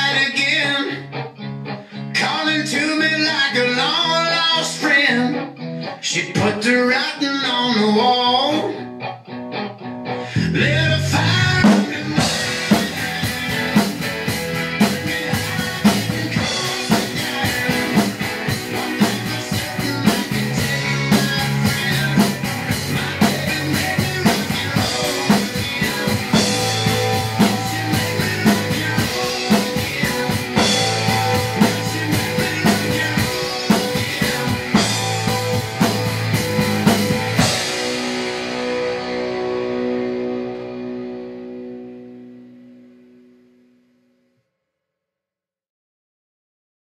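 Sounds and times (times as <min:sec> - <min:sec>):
rock song with electric guitar: 0:00.0 - 0:43.4
acoustic drum kit: 0:11.2 - 0:41.2.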